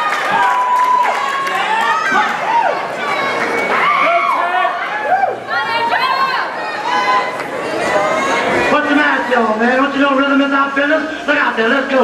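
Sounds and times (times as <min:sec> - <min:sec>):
crowd cheering and shouting: 0:00.0 - 0:11.8.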